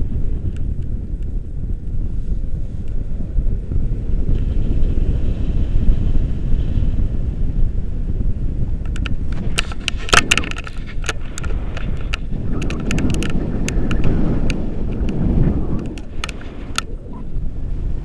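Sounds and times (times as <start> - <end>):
wind buffeting microphone: 0.0 - 18.0
sharp clicks and rattles: 8.8 - 17.1.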